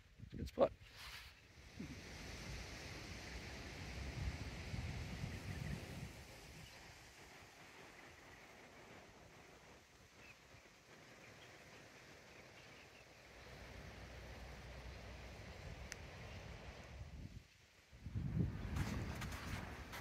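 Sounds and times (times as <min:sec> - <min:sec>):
quiet steady hiss: 0:00.0 - 0:20.0
wind rumble on microphone: 0:00.0 - 0:20.0
faint bird chirps: 0:10.1 - 0:13.6.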